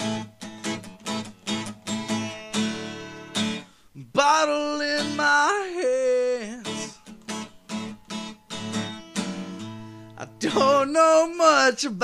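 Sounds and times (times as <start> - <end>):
acoustic guitar strumming: 0.0 - 12.0.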